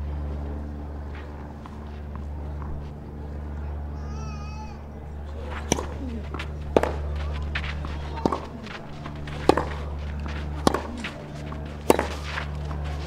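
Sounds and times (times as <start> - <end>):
steady low hum: 0.0 - 13.0
tennis ball knocks on clay court: 5.4 - 13.0.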